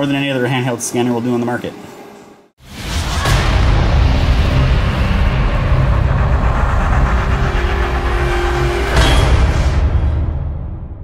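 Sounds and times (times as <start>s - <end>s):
sharp hit: 2.6s - 11.0s.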